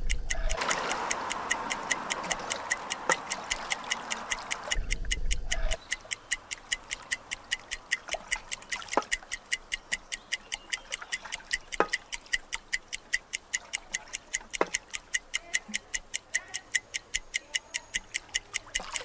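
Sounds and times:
clock ticking: 0:00.0 - 0:19.0.

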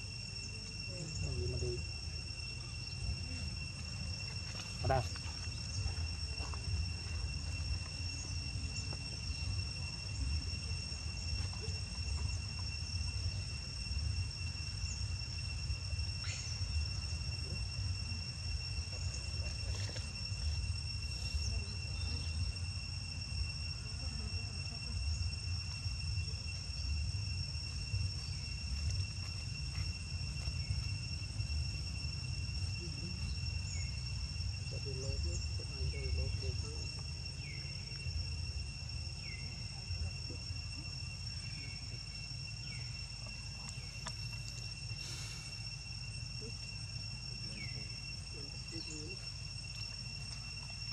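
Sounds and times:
insects droning: 0:00.0 - 0:50.9.

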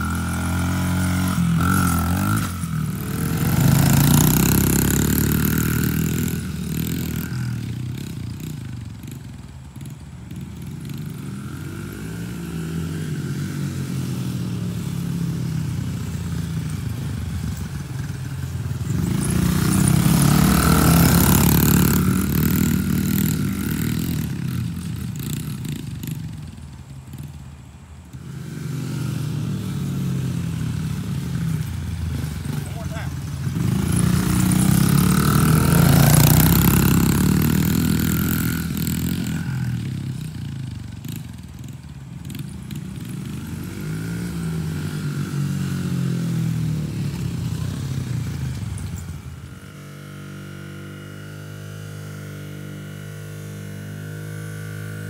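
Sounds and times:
dirt bike engines revving: 0:00.0 - 0:55.0.

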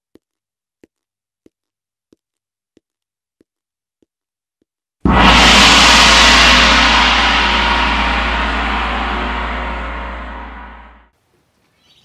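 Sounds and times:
deep low rumble: 0:05.1 - 0:11.1
loud gong-like hit: 0:05.1 - 0:11.1.

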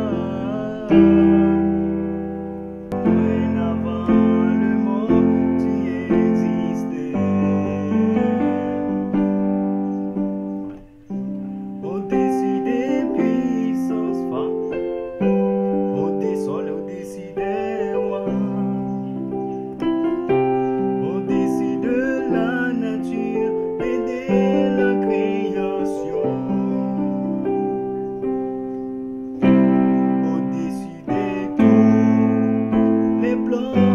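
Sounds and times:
keyboard piano chords: 0:00.0 - 0:33.9.

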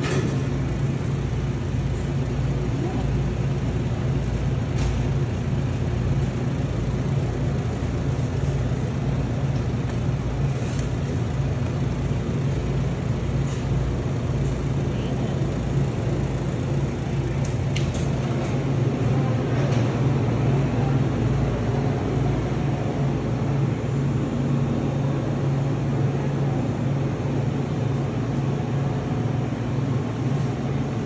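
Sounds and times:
refrigerated display case humming: 0:00.0 - 0:31.0.

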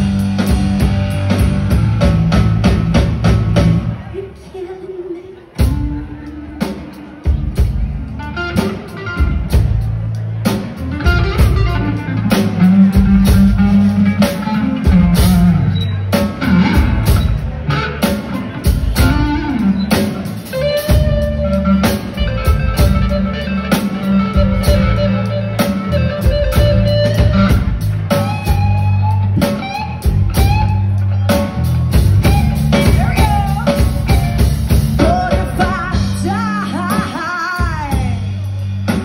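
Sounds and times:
bass line: 0:00.0 - 0:04.4, 0:05.6 - 0:39.0
electric guitars sustained notes: 0:05.6 - 0:39.0.

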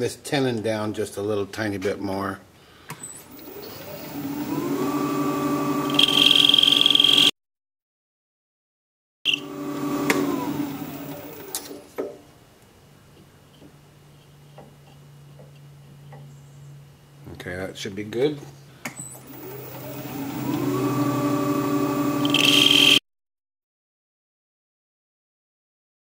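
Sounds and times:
lathe motor whine: 0:03.3 - 0:07.3, 0:09.3 - 0:11.6, 0:19.3 - 0:23.0
turning tool cutting wood: 0:03.3 - 0:07.3, 0:09.3 - 0:11.7, 0:19.3 - 0:23.0
high-pitched squeal: 0:05.8 - 0:07.3, 0:22.1 - 0:23.0.

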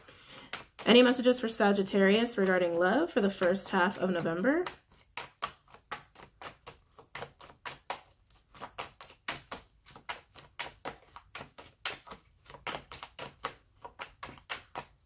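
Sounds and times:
cards being shuffled: 0:00.0 - 0:15.0.

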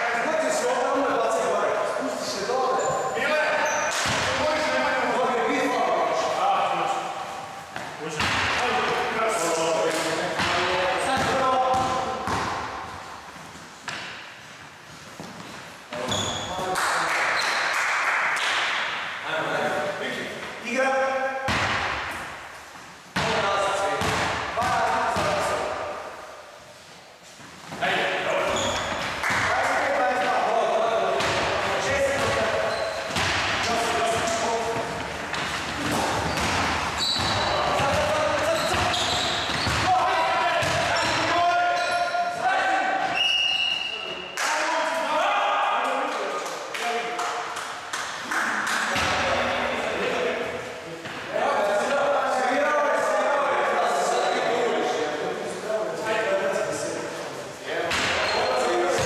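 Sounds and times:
basketball bouncing on wooden floor: 0:10.4 - 0:12.6, 0:33.1 - 0:39.9, 0:40.6 - 0:41.2.

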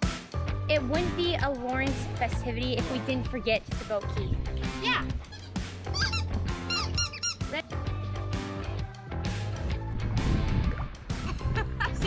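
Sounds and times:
background music: 0:00.0 - 0:12.0
squeaky dog toy squeaks: 0:05.2 - 0:07.6.

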